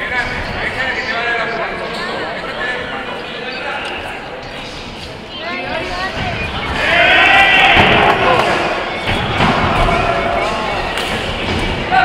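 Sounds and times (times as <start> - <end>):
spectators calling out: 5.4 - 12.0.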